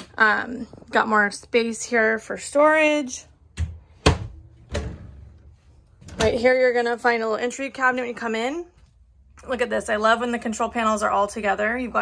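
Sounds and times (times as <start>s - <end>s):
wooden cabinet doors clunking: 3.6s - 5.4s.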